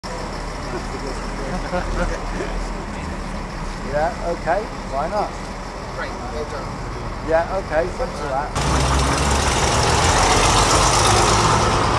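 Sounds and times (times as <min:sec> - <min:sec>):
bus engine idling: 0:00.0 - 0:11.9
person laughing: 0:00.7 - 0:02.7.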